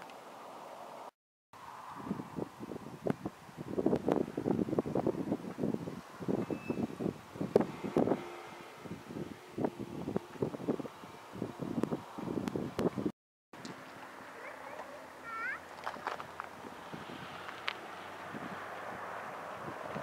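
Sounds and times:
gusty wind on microphone: 0:01.6 - 0:13.1, 0:15.9 - 0:20.0.

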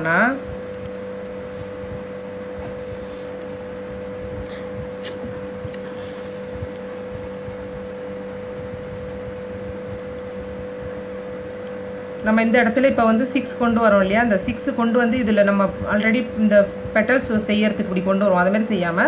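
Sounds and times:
two-tone mechanical hum: 0:00.0 - 0:19.0.

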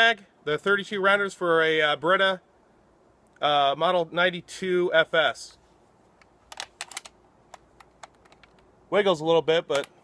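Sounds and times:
magazine clicking into rifle: 0:06.2 - 0:08.7, 0:09.7 - 0:10.0.

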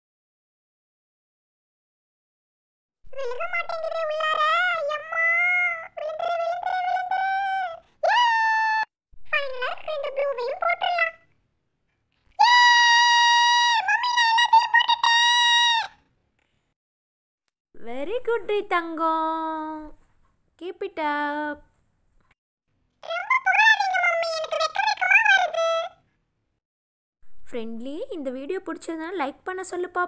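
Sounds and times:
high pitched-up voice speaking: 0:03.1 - 0:11.3, 0:12.4 - 0:15.9, 0:23.0 - 0:26.0.

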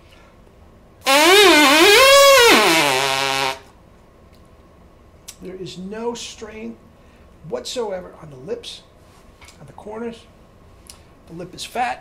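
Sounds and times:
buzzing lip tone: 0:01.0 - 0:03.7.

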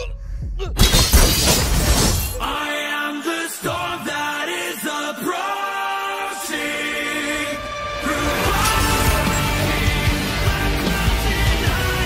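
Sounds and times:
glass shattering: 0:00.8 - 0:02.6, 0:08.3 - 0:10.0.

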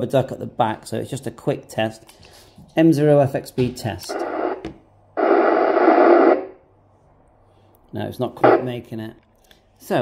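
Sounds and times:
radio static burst: 0:04.1 - 0:04.6, 0:05.2 - 0:06.6, 0:08.4 - 0:08.7.

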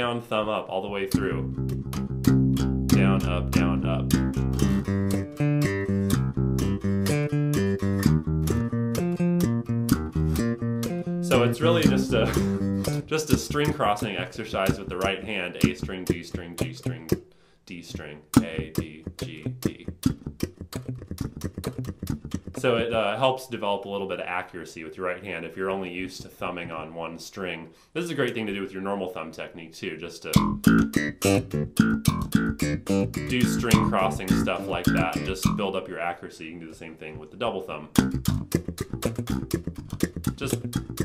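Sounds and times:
slap bass guitar: 0:00.0 - 0:23.2, 0:30.2 - 0:36.1, 0:36.7 - 0:41.0.

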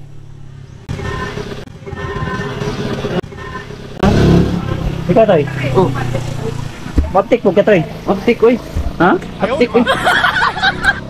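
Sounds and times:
small engine running: 0:00.9 - 0:04.4.

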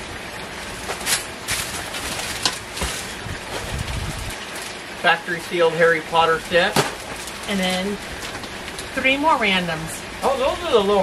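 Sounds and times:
cardboard boxes knocking and rustling: 0:00.9 - 0:04.1.

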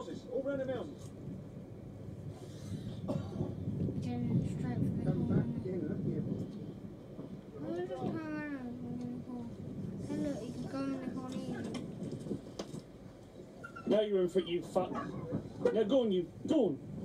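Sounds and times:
wind: 0:00.0 - 0:17.0.

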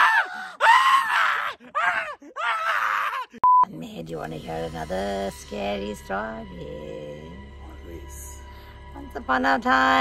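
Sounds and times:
people shrieking with laughter: 0:00.0 - 0:03.3.

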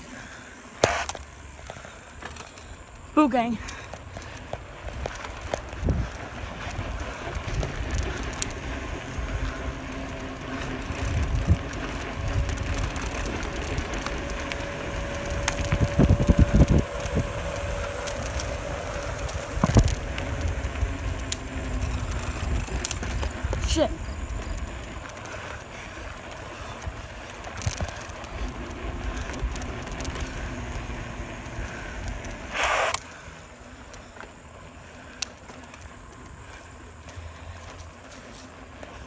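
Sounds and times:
bicycle clicks and rattles: 0:00.0 - 0:39.0
bicycle tyres rolling on asphalt: 0:00.0 - 0:39.0
wind buffeting microphone: 0:03.8 - 0:32.6.

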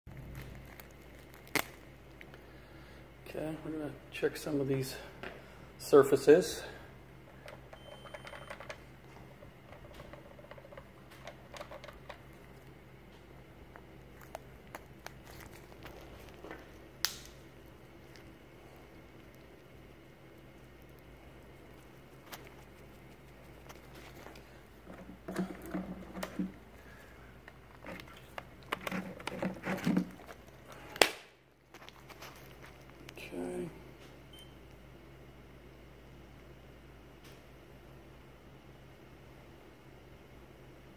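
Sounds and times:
steady low hum: 0:00.1 - 0:40.9.

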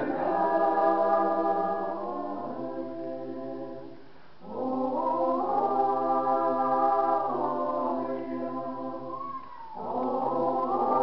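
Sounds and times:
mixed choir singing: 0:00.0 - 0:09.2, 0:09.8 - 0:11.0.

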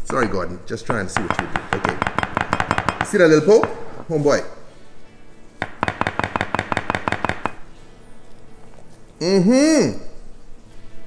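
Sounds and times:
spatula knocking on glass dish: 0:00.9 - 0:03.8, 0:05.6 - 0:07.6.

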